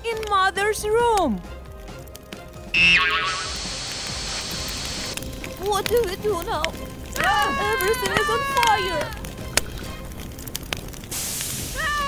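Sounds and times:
cartoon fire hissing: 0:02.8 - 0:05.2, 0:11.0 - 0:12.0.

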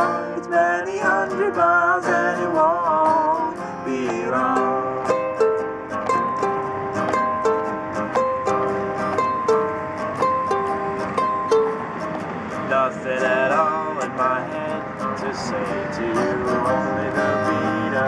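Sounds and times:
ukulele and acoustic guitar strumming: 0:00.0 - 0:18.0.

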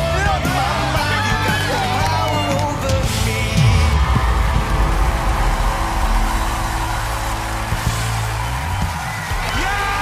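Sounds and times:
studio audience cheering and applauding: 0:00.0 - 0:10.0.

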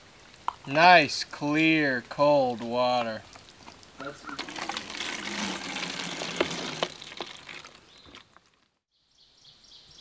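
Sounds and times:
water streaming into plastic bottle: 0:03.3 - 0:08.7.

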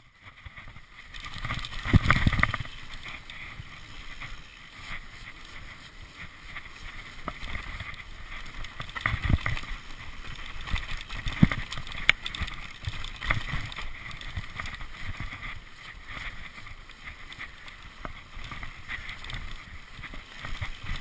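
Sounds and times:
bike tyre rumble and rattle: 0:00.0 - 0:21.0
wind on microphone: 0:01.4 - 0:21.0.

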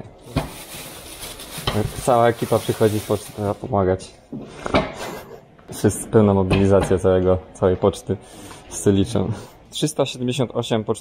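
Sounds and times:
plastic bag rustling: 0:00.2 - 0:03.7
postcards being handled: 0:00.3 - 0:03.6.

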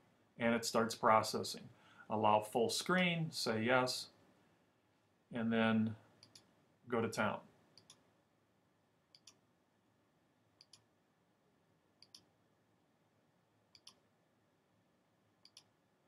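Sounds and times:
computer mouse clicks: 0:06.2 - 0:06.5, 0:07.8 - 0:08.0, 0:09.1 - 0:09.4, 0:10.6 - 0:10.9, 0:12.0 - 0:12.3, 0:13.7 - 0:14.0, 0:15.4 - 0:15.7.

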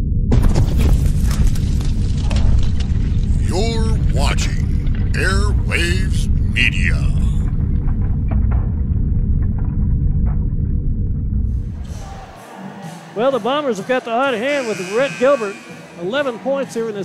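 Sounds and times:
person speaking: 0:03.4 - 0:07.4
bumper music with heavy bass: 0:03.4 - 0:12.6.

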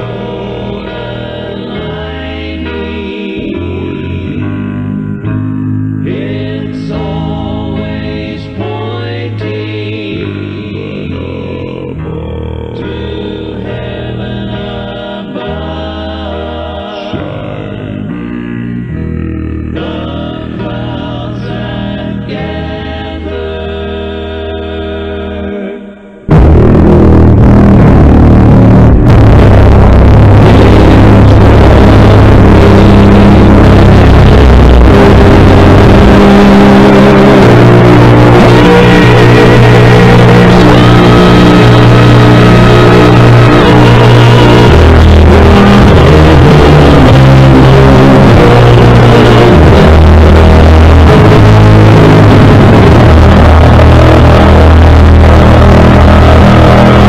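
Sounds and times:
male vocal quartet singing: 0:00.0 - 0:04.6, 0:06.0 - 0:26.2
distorted low bass voice: 0:00.0 - 0:57.0.

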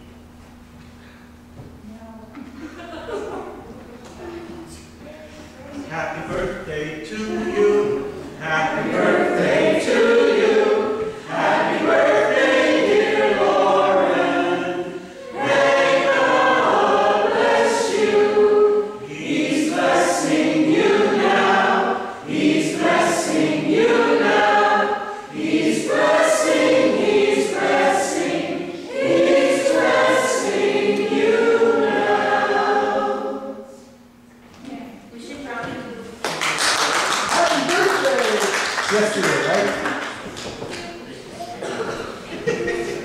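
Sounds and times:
congregation singing: 0:05.8 - 0:34.2, 0:38.9 - 0:43.0.

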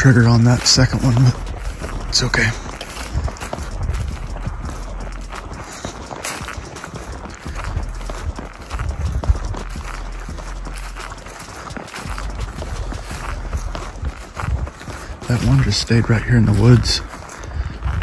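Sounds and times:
footsteps through grass: 0:00.0 - 0:18.0.

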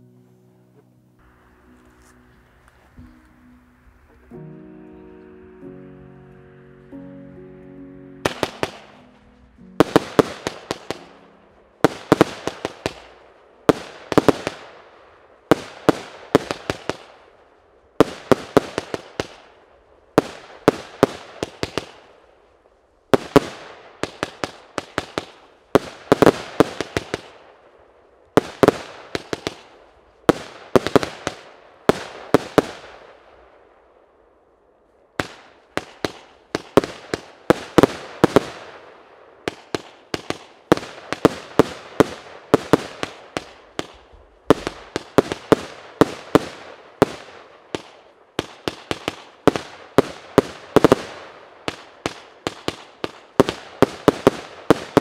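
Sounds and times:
small firework pops and hiss: 0:11.8 - 0:14.8, 0:15.5 - 0:17.4, 0:18.0 - 0:19.6, 0:20.2 - 0:27.5, 0:28.2 - 0:33.3, 0:34.9 - 0:38.9, 0:39.5 - 0:55.0.

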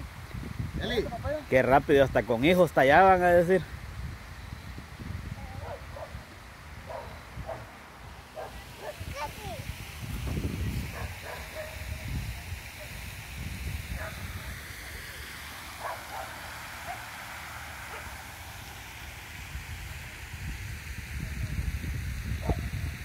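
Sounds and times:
wind rumbling on microphone: 0:00.0 - 0:02.5, 0:03.6 - 0:23.0
faint distant sounds: 0:04.3 - 0:10.0, 0:10.8 - 0:21.3.

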